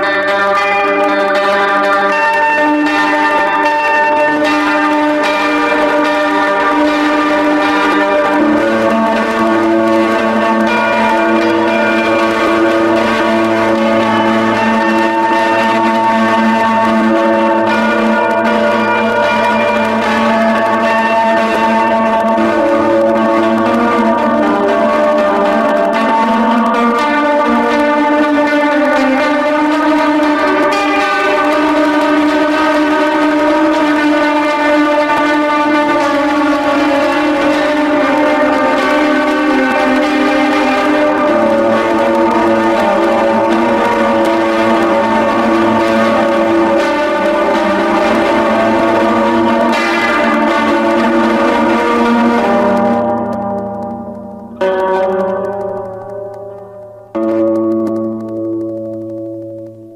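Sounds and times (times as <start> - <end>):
clean electric guitar playing: 0.0 - 59.9.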